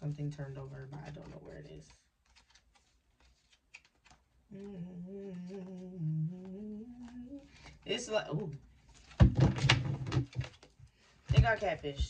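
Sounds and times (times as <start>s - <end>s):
woman humming a long note: 4.5s - 7.5s.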